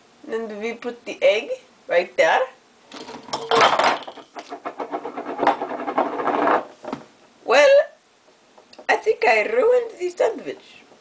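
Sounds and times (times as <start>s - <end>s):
glass jars rolling on table: 2.9s - 6.9s
jars toppling onto wooden table: 2.9s - 7.1s.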